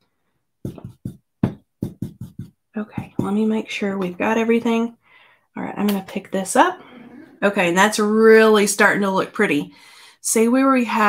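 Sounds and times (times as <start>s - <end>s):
brush knocking on plastic stencil: 0.6s - 3.5s.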